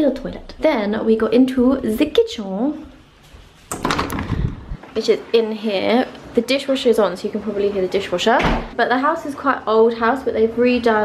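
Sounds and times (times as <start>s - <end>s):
door opening with low thud: 3.7s - 4.8s, 8.4s - 8.8s.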